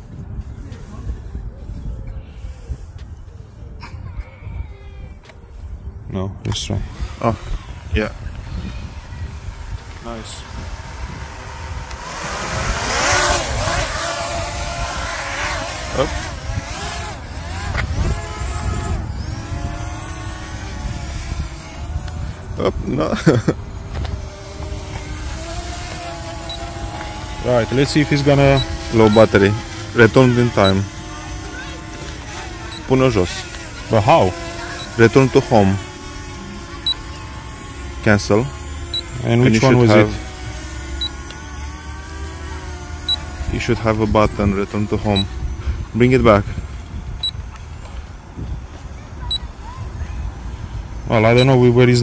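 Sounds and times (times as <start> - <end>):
wind rumble on microphone: 0.0 - 30.0, 43.3 - 52.0
drone motors humming: 4.4 - 52.0
remote controller beeps: 26.5 - 26.7, 36.8 - 37.1.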